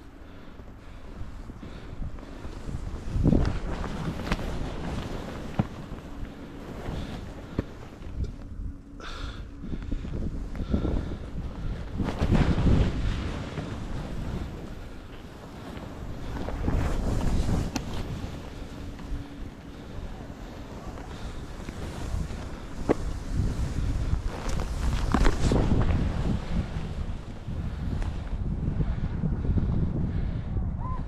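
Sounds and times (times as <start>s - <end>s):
wind rushing over microphone: 0.0s - 31.0s
skis scraping through snow: 0.3s - 8.4s, 9.1s - 28.6s.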